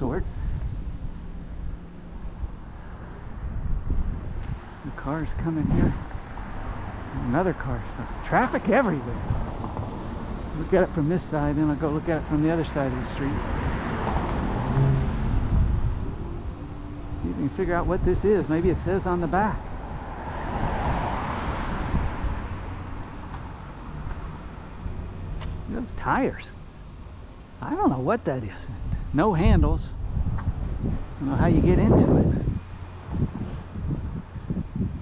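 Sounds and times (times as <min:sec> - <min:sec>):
car approaching: 0:00.0 - 0:31.8
wind rumbling on microphone: 0:00.0 - 0:35.0.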